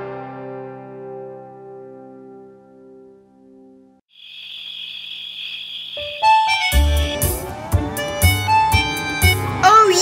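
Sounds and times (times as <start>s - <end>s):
high cricket-like chirring: 4.1s - 7.6s
electronic music with keyboard: 5.3s - 10.0s.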